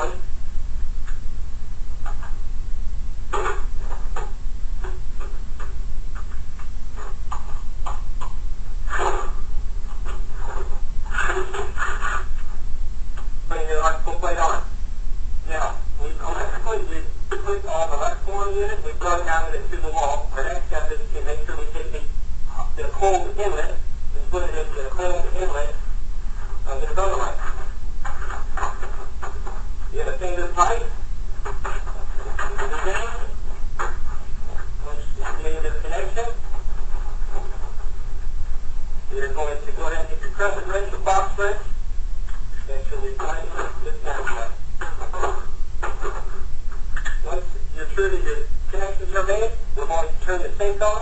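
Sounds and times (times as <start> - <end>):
indistinct speech: 0.0 - 0.3, 13.5 - 14.7, 15.4 - 25.8, 26.6 - 27.6, 29.9 - 31.0, 31.6 - 33.4, 34.8 - 36.4, 39.1 - 41.7, 42.6 - 45.5, 47.2 - 51.0
man speaking: 0.0 - 0.3, 13.5 - 14.8, 15.4 - 25.8, 26.6 - 27.6, 29.9 - 33.4, 34.8 - 36.5, 39.1 - 41.8, 42.6 - 45.4, 47.1 - 51.0
steady low hum: 0.0 - 51.0.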